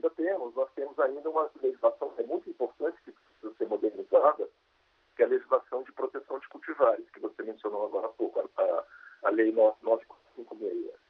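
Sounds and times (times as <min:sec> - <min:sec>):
man speaking over video call: 0:00.0 - 0:04.6, 0:05.2 - 0:11.0.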